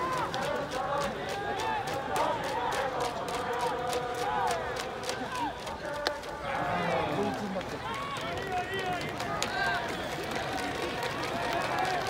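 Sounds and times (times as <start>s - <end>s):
crowd shouting and calling out: 0.0s - 12.0s.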